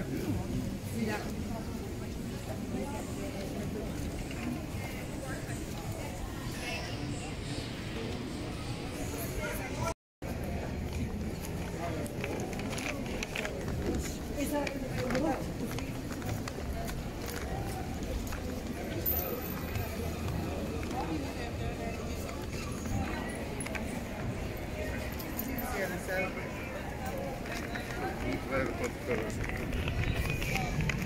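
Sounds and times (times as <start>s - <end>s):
indistinct voices of passersby: 0.0s - 31.0s
low rumble of crowd bustle: 0.0s - 31.0s.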